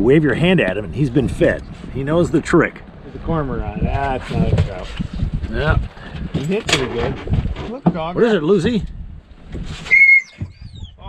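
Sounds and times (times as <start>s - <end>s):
dog crying high-pitched: 9.9s - 10.9s
dog whining: 9.9s - 11.0s.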